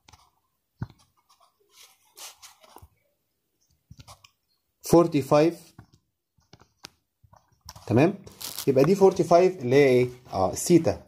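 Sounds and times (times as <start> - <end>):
man speaking: 4.8 - 5.7, 7.8 - 11.0.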